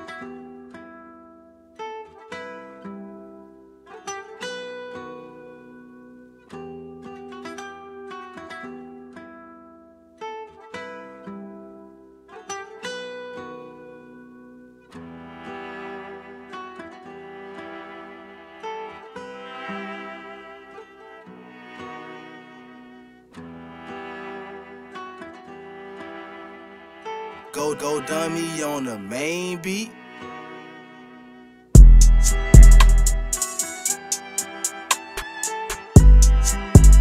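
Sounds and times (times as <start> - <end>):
spanish guitar plucked melody: 0.0 - 37.0
sustained musical layer: 31.8 - 37.0.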